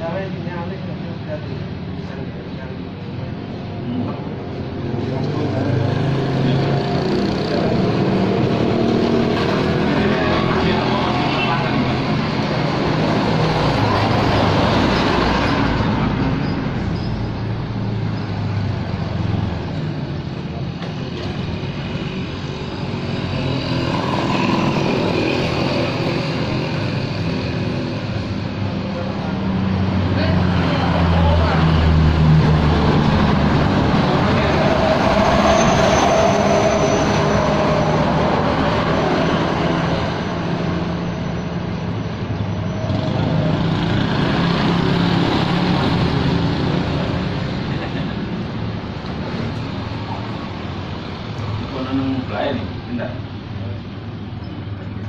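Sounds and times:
road traffic passing: 0.0s - 55.0s.

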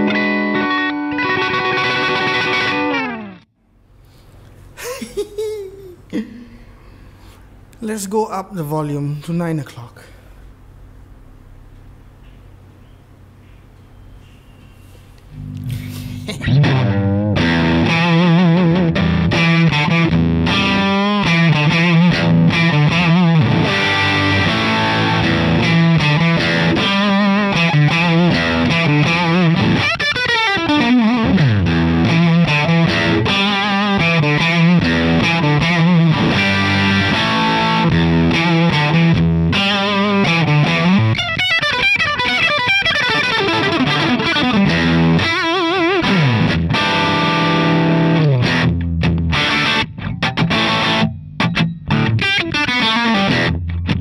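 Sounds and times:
overdriven electric guitar: 0.0s - 3.5s, 15.2s - 54.0s.

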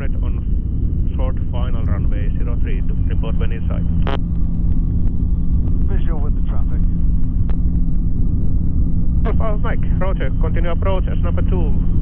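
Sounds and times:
aircraft engine and propeller droning: 0.0s - 12.0s.

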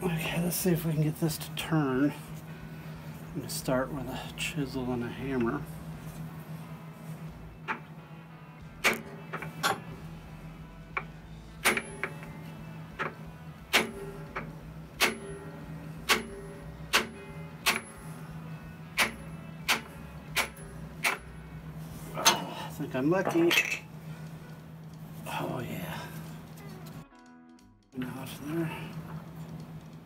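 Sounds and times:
hammer striking metal chisel: 11.6s - 12.3s, 16.1s - 18.0s.

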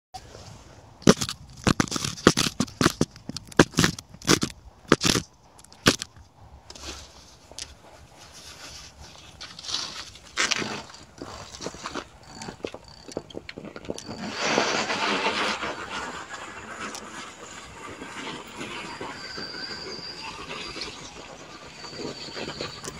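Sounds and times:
rustling and scuffing: 6.7s - 18.8s.

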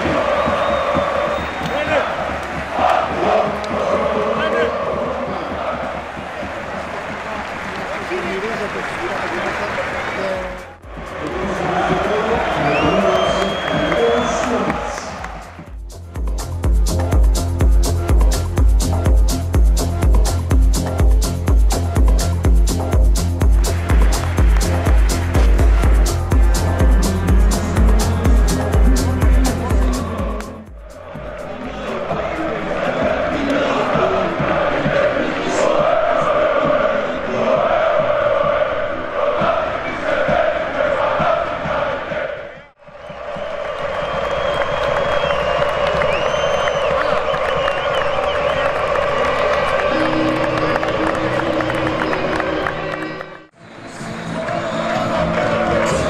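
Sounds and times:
stadium crowd chanting and singing: 0.0s - 15.8s, 23.6s - 56.0s.

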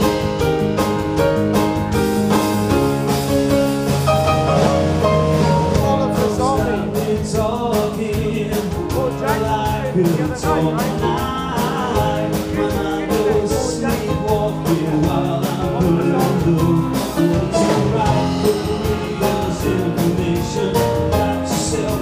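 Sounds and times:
drum kit beat: 0.0s - 22.0s
keyboard: 0.0s - 22.0s
man singing: 5.6s - 22.0s.

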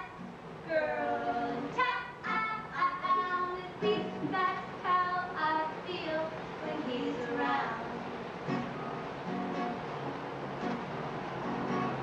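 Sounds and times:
woman singing high: 0.0s - 8.0s
strummed acoustic guitar: 0.0s - 12.0s.

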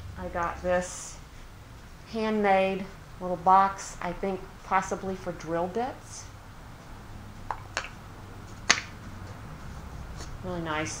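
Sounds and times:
sharp wooden click: 8.7s - 9.0s.

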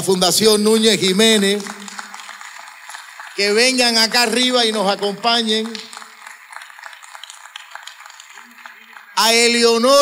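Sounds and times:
audience applauding lightly: 0.6s - 10.0s.

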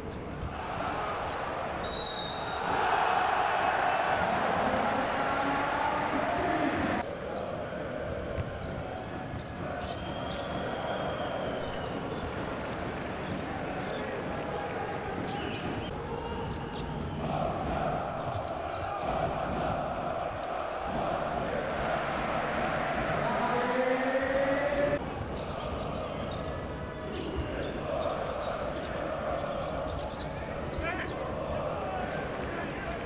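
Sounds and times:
sneaker squeaks: 0.0s - 2.7s, 7.0s - 20.6s, 25.0s - 31.6s
arena crowd noise: 0.0s - 33.0s.

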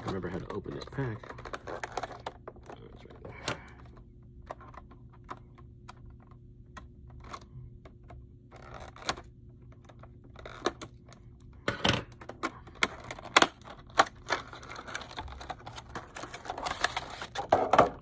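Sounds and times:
plastic package clicking and crinkling: 0.0s - 11.2s, 12.2s - 18.0s.

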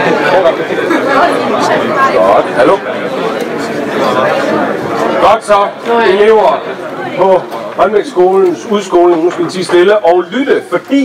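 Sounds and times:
teenagers chattering: 0.0s - 11.0s.

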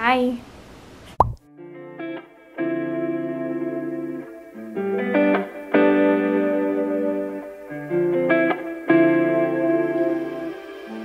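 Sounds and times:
background music with guitar chords: 1.4s - 11.0s.

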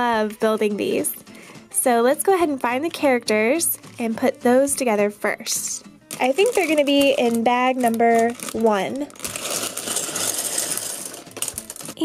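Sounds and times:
plastic bag crinkling: 6.1s - 12.0s
plastic bricks rattling: 6.1s - 12.0s.

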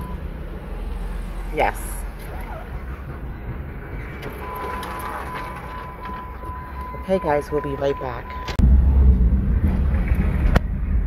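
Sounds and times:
engine and road rumble: 0.0s - 11.0s
faint steady high tone: 4.3s - 8.6s.

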